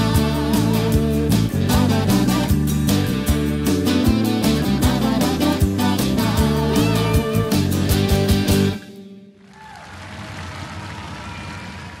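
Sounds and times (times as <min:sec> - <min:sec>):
audience applauding: 0:09.4 - 0:12.0.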